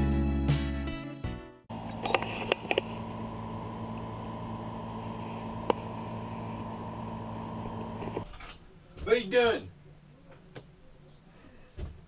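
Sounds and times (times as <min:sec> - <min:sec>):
steady machine hum: 0:01.7 - 0:08.2.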